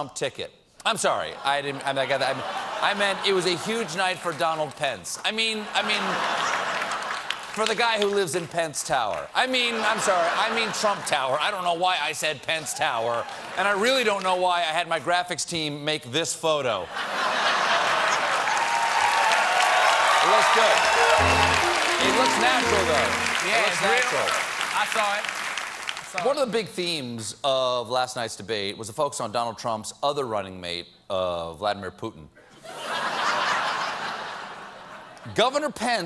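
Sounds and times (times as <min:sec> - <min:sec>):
studio audience laughing: 0:05.6 - 0:07.4, 0:09.6 - 0:11.1, 0:16.9 - 0:18.6, 0:32.6 - 0:35.1
audience applauding: 0:06.0 - 0:08.2, 0:18.1 - 0:26.3.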